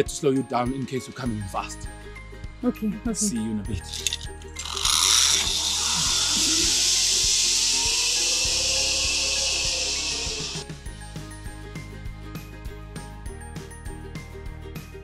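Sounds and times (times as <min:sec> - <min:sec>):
background music with steady beat: 0:00.0 - 0:15.0
zipline pulleys whirring on cable: 0:03.9 - 0:10.7.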